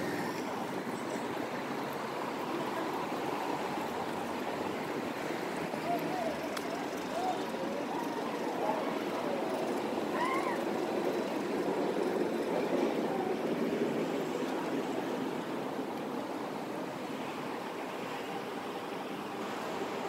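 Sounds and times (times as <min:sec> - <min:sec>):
road traffic rushing: 0:00.0 - 0:20.0.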